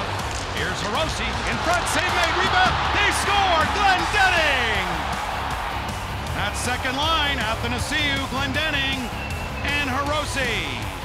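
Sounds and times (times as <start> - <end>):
arena crowd noise: 0.0 - 11.0
music: 0.0 - 11.0
commentator shouting: 1.3 - 5.1.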